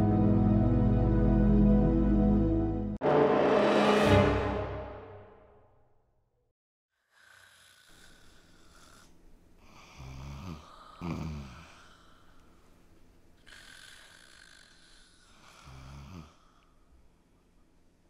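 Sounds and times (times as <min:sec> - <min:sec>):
person snoring: 0:07.0 - 0:12.4, 0:13.4 - 0:16.7.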